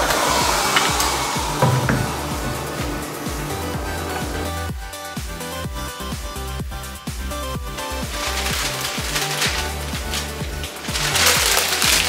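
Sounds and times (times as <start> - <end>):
electronic music with steady beat: 0.0 - 12.0
backing paper peeled off: 7.8 - 12.0.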